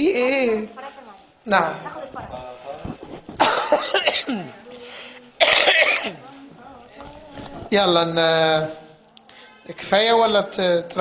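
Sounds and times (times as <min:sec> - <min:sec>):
man coughing: 0:03.4 - 0:04.6, 0:05.4 - 0:06.2.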